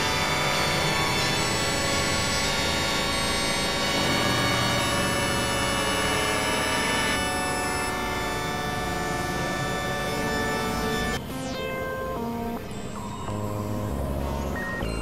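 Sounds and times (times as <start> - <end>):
synthesizer drone: 0.0 - 15.0.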